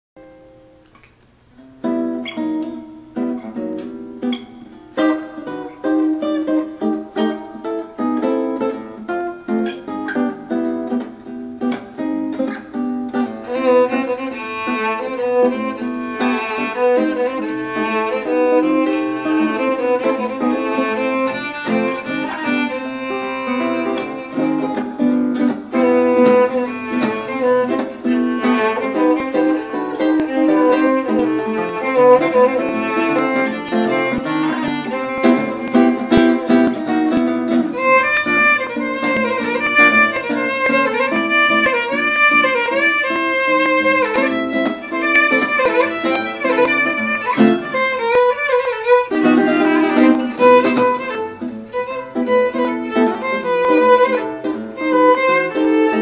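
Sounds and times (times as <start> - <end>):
classical guitar melody: 0.2 - 56.0
violin bowing a melody: 1.8 - 56.0.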